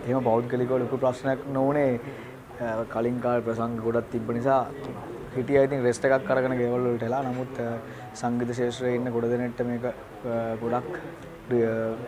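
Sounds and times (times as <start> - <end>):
man speaking: 0.0 - 12.0.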